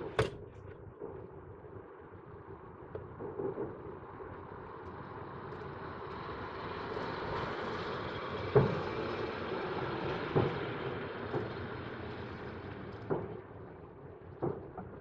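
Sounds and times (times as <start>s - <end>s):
distant fireworks bangs: 8.5s - 15.0s.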